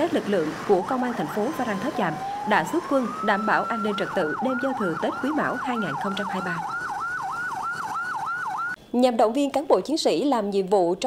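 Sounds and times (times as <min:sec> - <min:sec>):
police siren yelping: 0:00.0 - 0:08.8.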